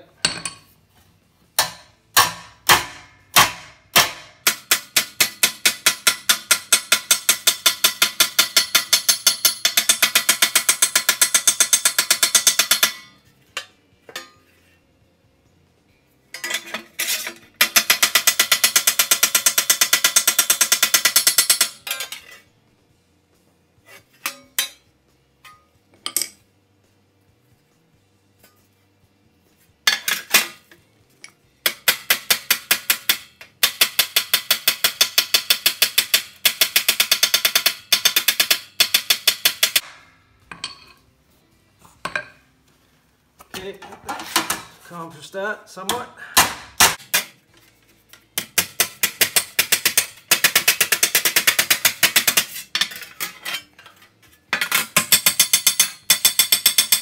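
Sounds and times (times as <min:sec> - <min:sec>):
hammer striking sheet metal: 0:01.6 - 0:13.2, 0:45.9 - 0:47.3.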